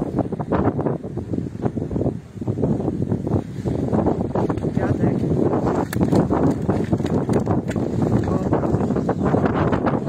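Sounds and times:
wind buffeting microphone: 0:00.0 - 0:10.0
fish flapping in plastic basket: 0:05.8 - 0:08.3.

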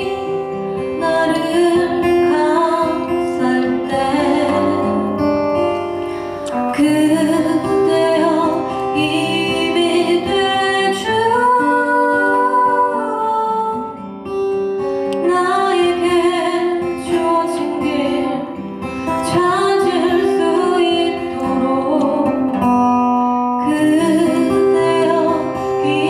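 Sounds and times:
woman singing a ballad: 0:00.0 - 0:14.2, 0:15.0 - 0:23.0, 0:23.6 - 0:26.0
acoustic guitar: 0:00.0 - 0:26.0.

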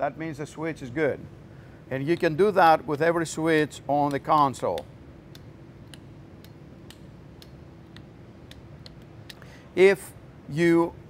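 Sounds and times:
low steady hum: 0:00.0 - 0:11.0
switches clicking: 0:03.6 - 0:09.4.

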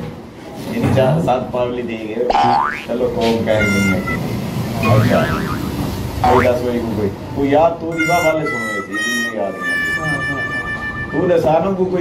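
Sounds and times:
people talking: 0:00.7 - 0:05.6, 0:06.2 - 0:12.0
comic upward pitch slide: 0:03.5 - 0:06.7.

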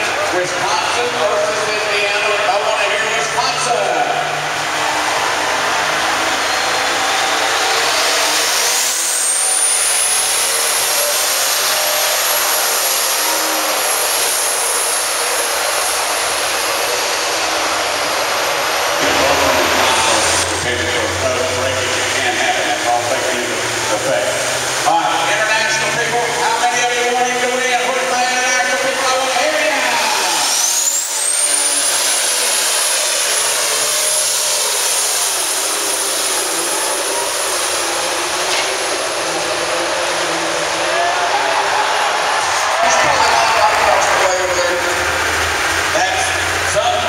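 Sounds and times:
diesel tractor engine under load: 0:04.3 - 0:24.8, 0:30.4 - 0:40.9
turbo whine: 0:04.8 - 0:23.2.

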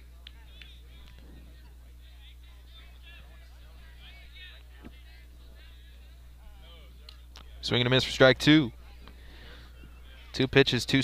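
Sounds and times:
faint distant voices: 0:00.0 - 0:11.0
steady low hum: 0:00.0 - 0:11.0.

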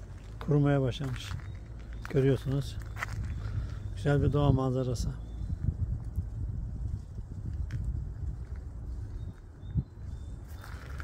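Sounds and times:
wind buffeting microphone: 0:01.1 - 0:11.0.

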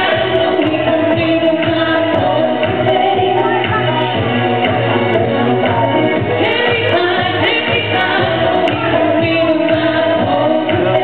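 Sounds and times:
instrumental accompaniment: 0:00.0 - 0:11.0
woman singing pop song: 0:00.0 - 0:11.0.

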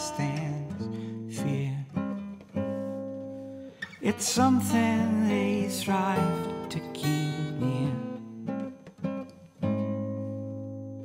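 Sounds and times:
guitar chord ringing: 0:00.0 - 0:11.0.

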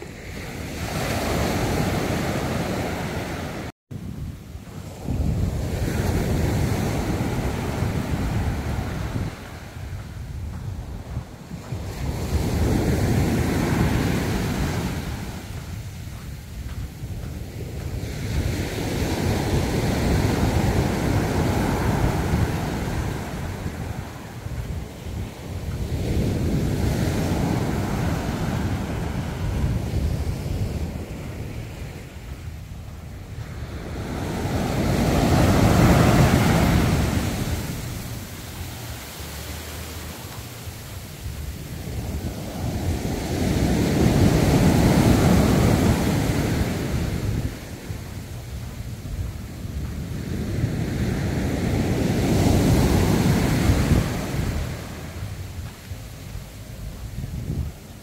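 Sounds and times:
ocean waves breaking on beach: 0:00.0 - 0:58.0.

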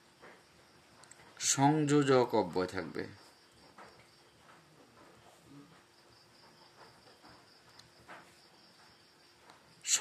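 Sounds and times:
crickets chirring: 0:00.0 - 0:10.0
man talking: 0:01.4 - 0:03.2.

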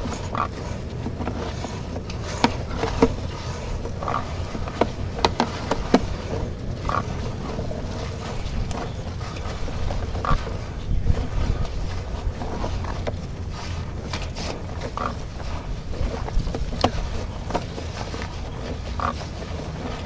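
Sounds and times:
low rumble of cable in pipe: 0:00.0 - 0:20.0.

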